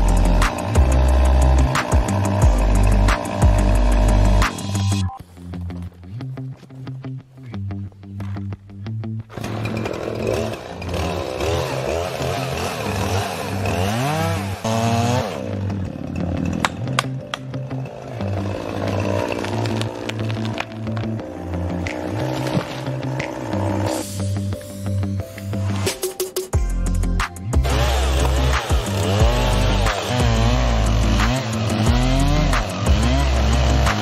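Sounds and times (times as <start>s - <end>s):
chainsaw cutting tree trunk: 0.0s - 4.8s, 9.3s - 24.0s, 27.6s - 34.0s
background music with beat: 0.0s - 9.1s, 20.7s - 34.0s.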